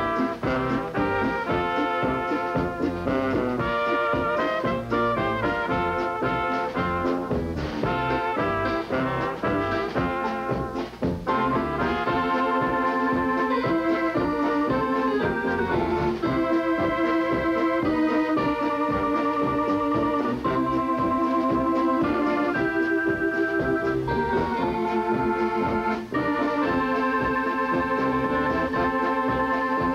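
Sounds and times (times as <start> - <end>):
drums: 0.0 - 29.9
piano accordion chords: 0.0 - 29.9
polka band playing: 0.0 - 29.9
trumpets: 0.0 - 29.9.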